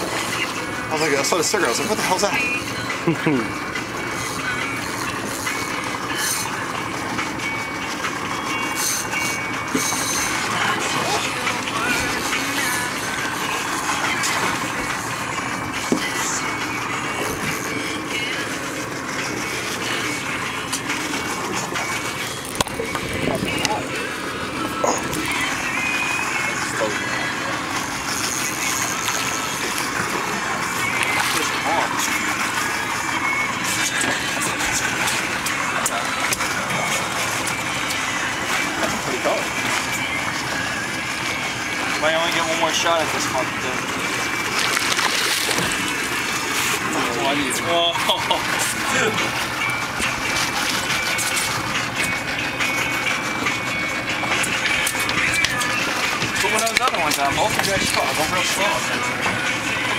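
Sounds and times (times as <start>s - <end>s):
fishing boat engine noise: 0.0s - 59.9s.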